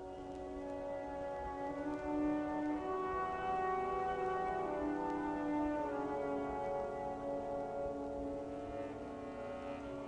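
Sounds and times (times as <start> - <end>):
orchestra holding sustained chords: 0.0 - 10.0.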